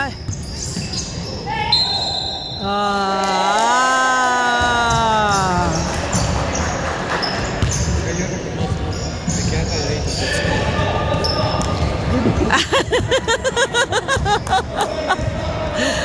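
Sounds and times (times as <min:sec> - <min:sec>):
sneaker squeaks: 0:00.0 - 0:02.6, 0:05.3 - 0:12.0
talk and laughter: 0:12.0 - 0:16.0.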